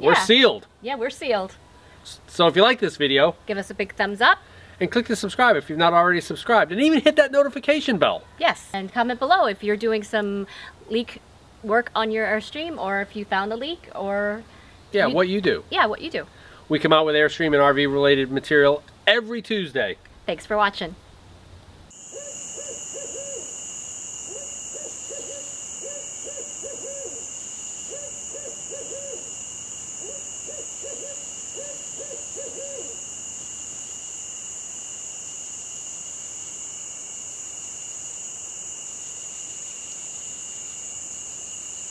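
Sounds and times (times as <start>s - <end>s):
owl hooting: 21.9s - 33.1s
night insects chorus: 21.9s - 41.9s.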